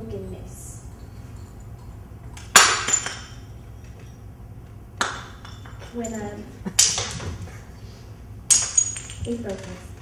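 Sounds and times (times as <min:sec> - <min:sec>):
ceramic cup smashing: 0:02.4 - 0:03.5
pieces clinking: 0:08.5 - 0:10.0.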